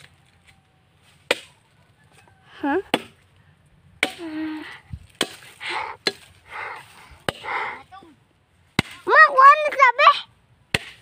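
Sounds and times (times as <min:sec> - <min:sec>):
blade chopping wood: 0:02.9 - 0:03.2, 0:04.0 - 0:04.3, 0:05.1 - 0:06.3, 0:08.7 - 0:09.2, 0:10.7 - 0:11.0.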